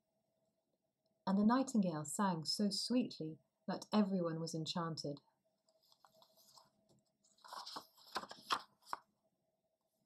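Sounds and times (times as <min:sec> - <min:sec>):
paper page turning: 0:05.7 - 0:09.1.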